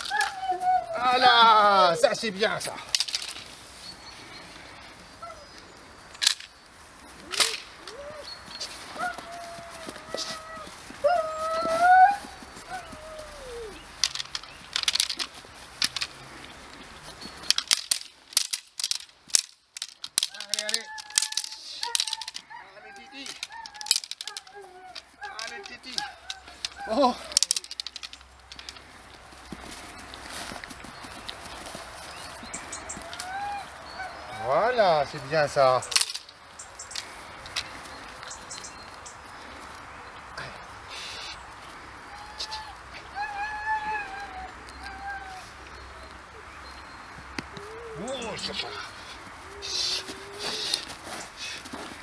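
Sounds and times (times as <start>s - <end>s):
puppy high-pitched calls: 7.2s - 14.0s, 20.4s - 28.8s, 31.3s - 36.1s, 42.0s - 51.6s.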